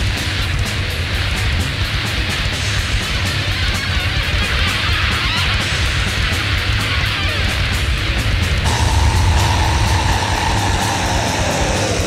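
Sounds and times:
heavy bass: 8.2 - 12.0
cymbal hits: 8.7 - 12.0
high held note sliding down: 8.7 - 12.0.

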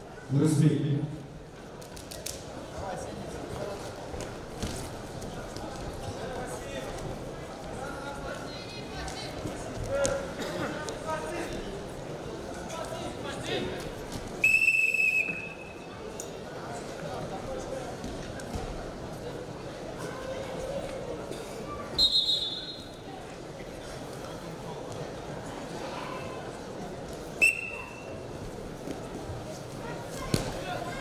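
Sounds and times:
crowd murmur: 0.0 - 31.0
referee's whistle blast: 22.0 - 22.9.

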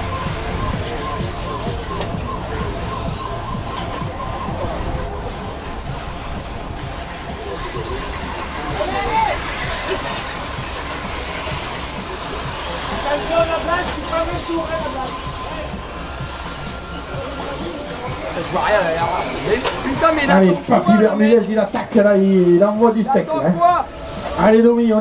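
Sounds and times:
indistinct voices: 0.0 - 25.0
music: 0.0 - 25.0
steady background noise: 0.0 - 25.0.

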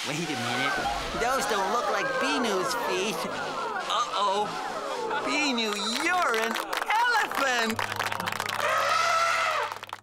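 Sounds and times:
cartoon elephant trumpeting: 8.5 - 9.9.

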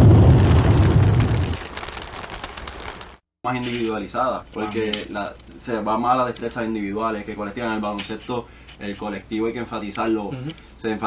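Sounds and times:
explosion rumble: 0.0 - 2.3
fire crackle: 0.0 - 3.2.

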